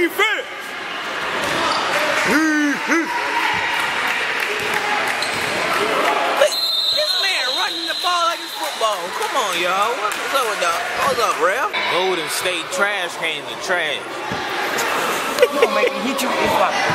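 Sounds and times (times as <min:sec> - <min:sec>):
steady hall noise: 0:00.0 - 0:16.9
voices calling out: 0:04.6 - 0:12.6.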